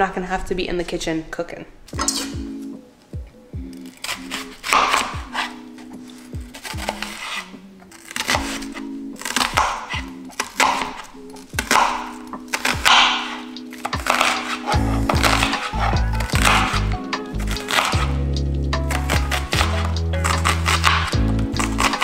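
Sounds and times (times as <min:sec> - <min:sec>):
gentle background music: 0:00.0 - 0:22.0
knife slicing onion: 0:03.6 - 0:22.0.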